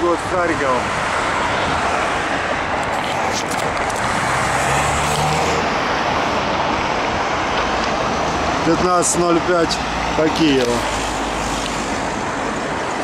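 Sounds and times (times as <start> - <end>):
road and traffic noise: 0.0 - 13.0
car engine revving: 2.1 - 6.5.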